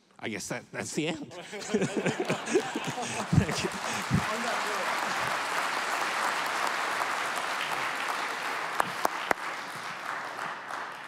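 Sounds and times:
audience applauding: 1.4s - 11.0s.

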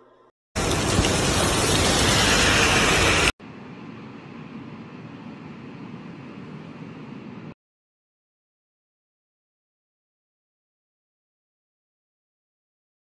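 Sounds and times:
heavy rain on a car: 0.6s - 3.3s.

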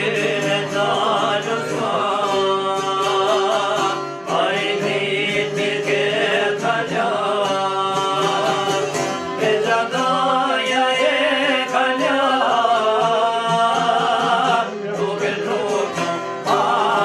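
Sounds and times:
man singing folk song: 0.0s - 17.0s
plucked lute: 0.0s - 17.0s.

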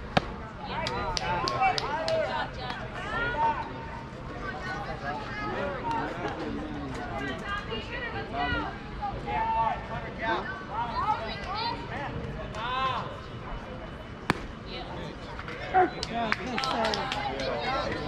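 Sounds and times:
baseball hitting catcher's mitt: 14.3s - 14.5s.

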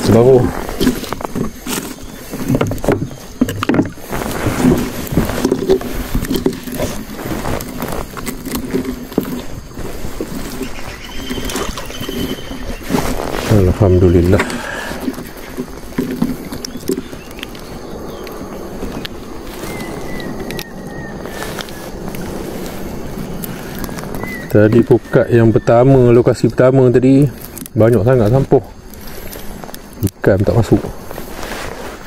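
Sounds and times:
person speaking: 0.0s - 1.0s, 13.4s - 15.2s
net rustling: 0.0s - 24.8s, 30.6s - 32.0s
knocks and clicks against boat: 0.7s - 13.1s, 14.2s - 19.2s.

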